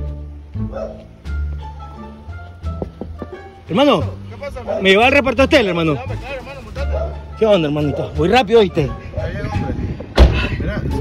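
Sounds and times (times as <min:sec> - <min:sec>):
car door slamming: 0:10.1 - 0:10.5.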